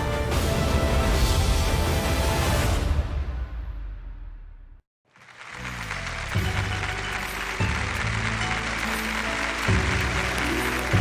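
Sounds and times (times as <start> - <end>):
theme music: 0.0 - 11.0
studio audience applauding: 5.1 - 11.0.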